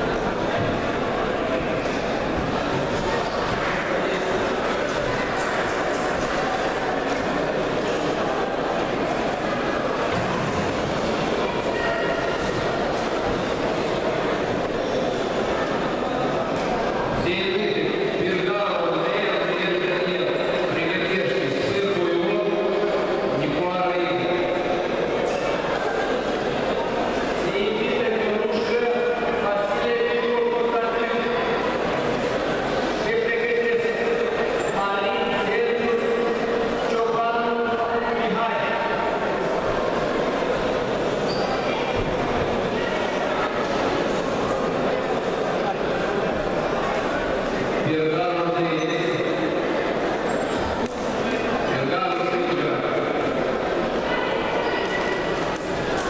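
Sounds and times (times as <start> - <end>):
crowd hubbub in large hall: 0.0 - 56.0
echoing babble of voices: 0.0 - 56.0.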